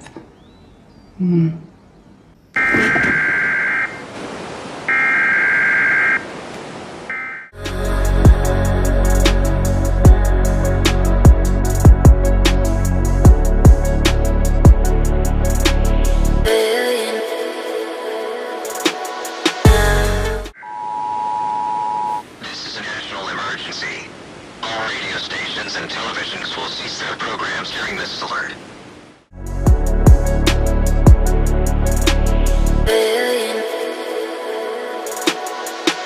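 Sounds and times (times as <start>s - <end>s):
two-tone emergency alert signal: 2.6s - 4.0s, 4.9s - 6.2s, 7.1s - 7.5s, 20.6s - 22.2s
constant hiss: 20.7s - 29.3s.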